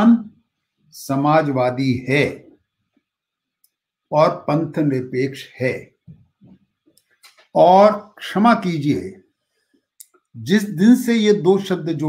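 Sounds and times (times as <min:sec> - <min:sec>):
elderly man speaking: 0:00.0 - 0:00.3, 0:00.9 - 0:02.6, 0:04.1 - 0:06.0, 0:07.4 - 0:09.2, 0:10.4 - 0:12.0.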